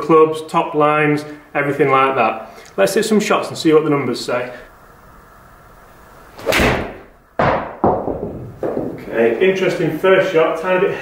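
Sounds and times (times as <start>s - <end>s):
golf club striking hitting mat: 6.4s - 9.0s
sharp thuds: 6.4s - 9.0s.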